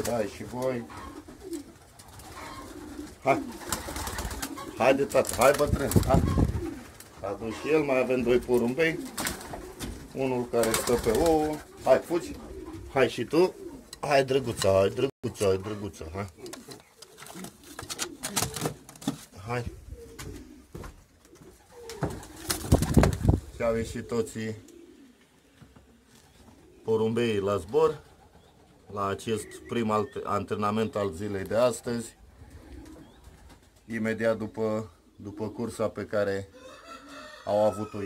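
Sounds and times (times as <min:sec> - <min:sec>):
pigeons cooing: 0:00.0 - 0:38.0.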